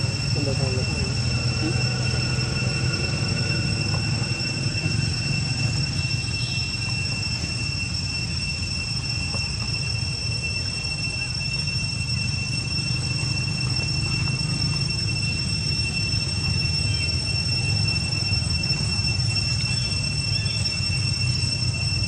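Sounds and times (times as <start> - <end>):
high-pitched drone: 0.0 - 22.0.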